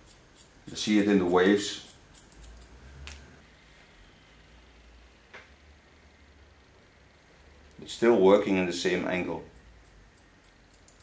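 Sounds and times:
scissors snipping hair: 0.0s - 3.3s, 9.6s - 11.0s.

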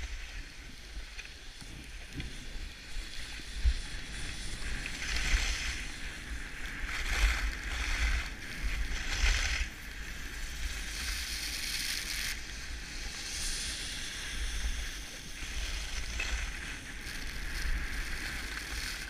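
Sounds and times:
skis scraping over snow: 0.0s - 19.0s
wind rumbling on microphone: 0.0s - 19.0s.

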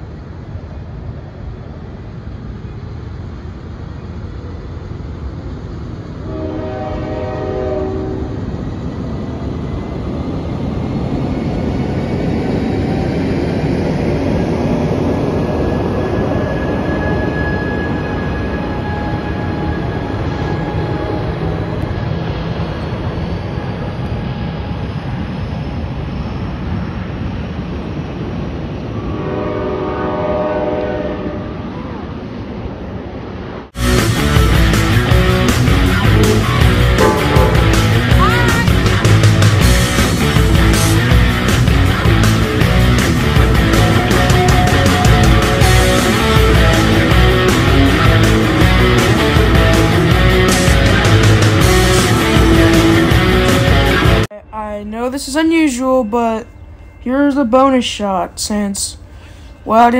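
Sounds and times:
train wheels rumbling on rails: 0.0s - 59.9s
multi-note train horn: 6.2s - 8.4s, 29.0s - 31.6s, 36.0s - 38.8s, 43.8s - 53.9s.

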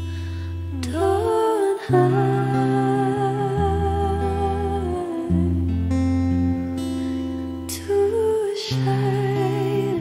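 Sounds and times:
bass and guitar: 2.6s - 7.8s.

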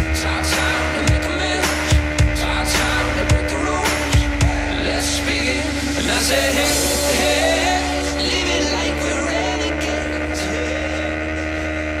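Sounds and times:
motorcycle engine at steady revs: 0.0s - 12.0s.

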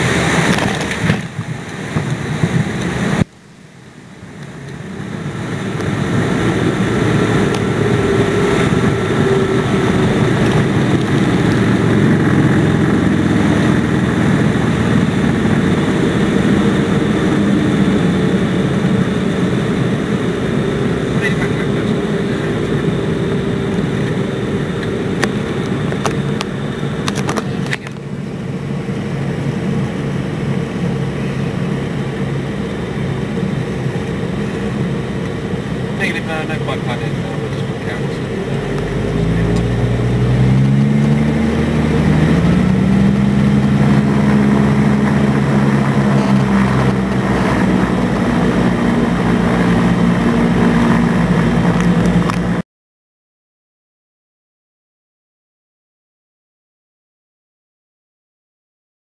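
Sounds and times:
aircraft piston engines humming: 0.0s - 52.6s.

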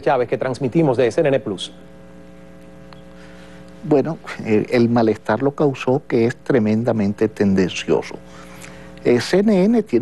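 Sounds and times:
electrical mains hum: 0.0s - 10.0s
man speaking: 3.8s - 8.3s, 9.0s - 10.0s.

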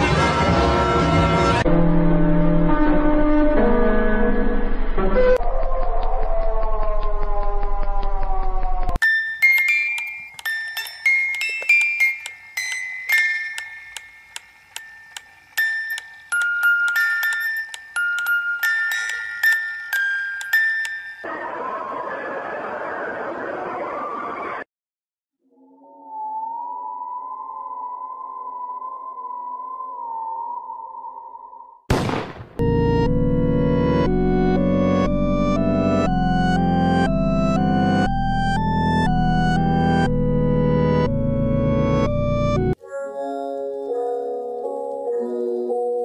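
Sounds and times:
eerie synthesizer drone: 0.0s - 9.0s
slow bell-like melody: 9.0s - 21.3s.

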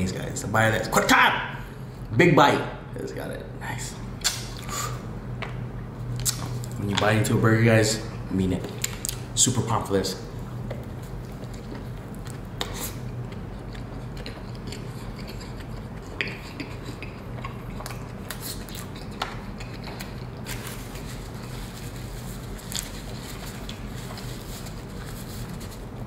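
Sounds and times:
steady low hum: 0.0s - 26.0s
sharp mouth clicks: 4.2s - 4.9s, 6.2s - 6.6s, 12.3s - 20.2s
person chewing: 6.2s - 6.8s, 10.6s - 25.6s.

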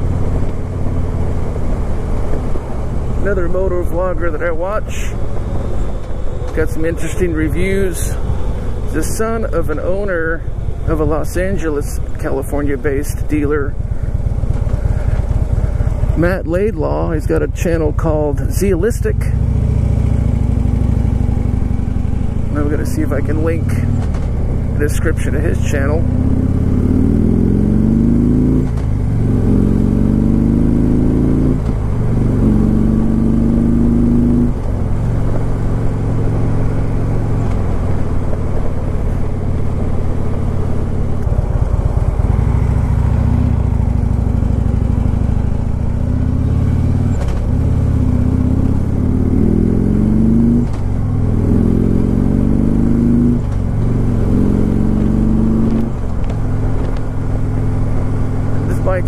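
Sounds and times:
motorcycle engine revving: 0.0s - 59.0s
road noise: 0.0s - 59.0s.

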